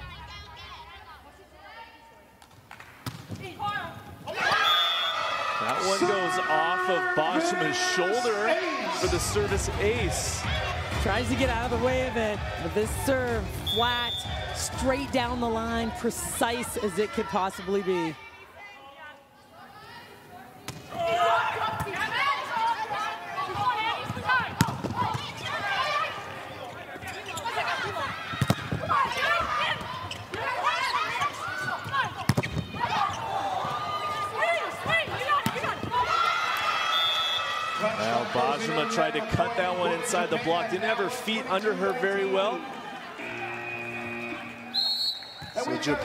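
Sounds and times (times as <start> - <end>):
players calling: 4.2 - 18.5, 20.8 - 46.0.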